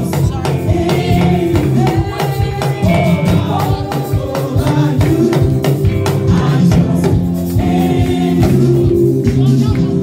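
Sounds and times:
gospel singing over a band: 0.0 - 10.0.

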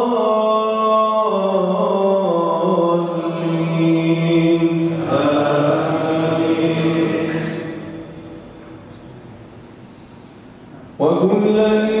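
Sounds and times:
man reciting melodically: 0.0 - 8.5, 10.8 - 12.0.

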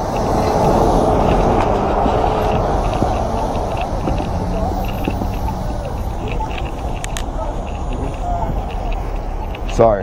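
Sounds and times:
street traffic rumble: 0.0 - 10.0
vehicles passing close by: 0.0 - 10.0.

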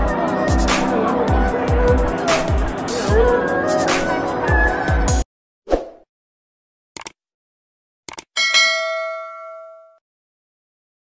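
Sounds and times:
notification bell ding: 8.4 - 10.0.

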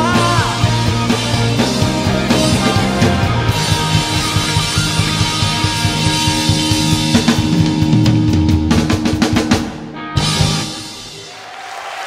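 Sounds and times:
drum and cymbal fill: 0.0 - 11.4
rock band playing live: 0.0 - 11.4.

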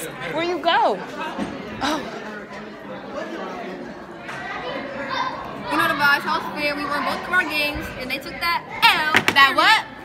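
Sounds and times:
indistinct background chatter: 0.0 - 10.0.

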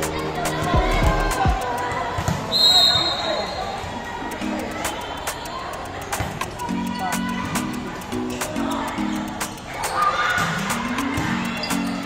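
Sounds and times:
crowd chatter: 0.0 - 12.0
short high whistle: 2.5 - 3.6.

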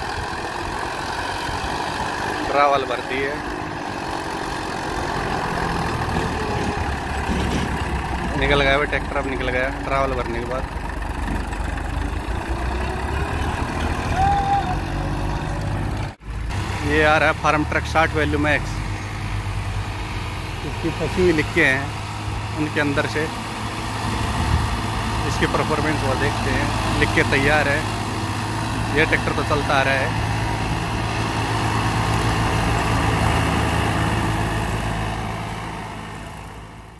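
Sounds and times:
tractor diesel engine under load: 0.0 - 36.9.

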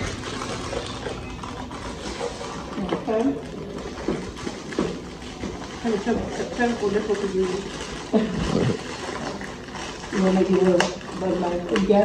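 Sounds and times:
person groaning: 8.3 - 8.8.

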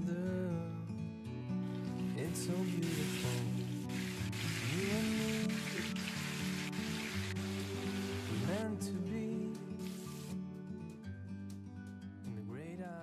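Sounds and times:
background music: 0.0 - 13.0
fish sizzling in hot oil: 2.8 - 8.4.

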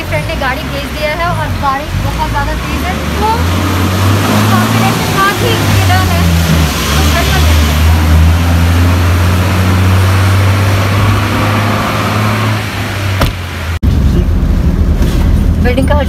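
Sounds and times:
street noise: 0.0 - 16.0
steady rumble: 13.2 - 16.0.

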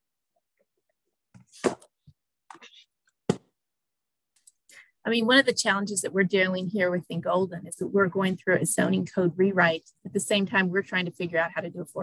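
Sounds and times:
faint small noises: 0.3 - 3.6.

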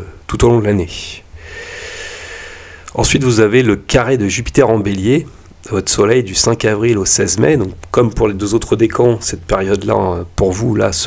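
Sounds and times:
man breathing in: 1.4 - 2.9.

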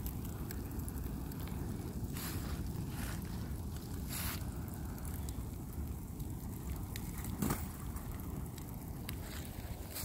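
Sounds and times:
fire burning with crackles: 0.0 - 10.0.

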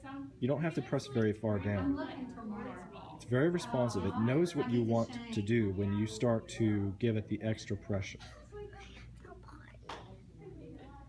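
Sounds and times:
faint murmured voices: 0.0 - 11.0.

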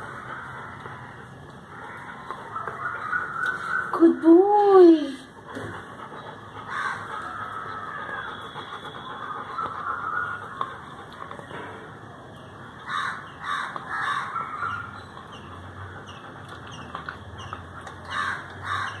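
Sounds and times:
birds calling: 0.0 - 19.0.

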